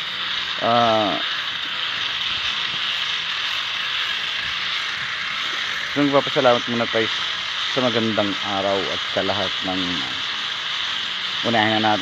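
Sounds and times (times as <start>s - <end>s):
high-pitched hiss: 0.0s - 12.0s.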